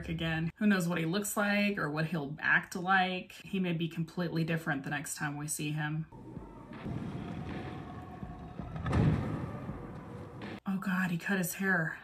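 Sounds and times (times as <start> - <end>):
low rumbling drama score: 6.2 - 10.6.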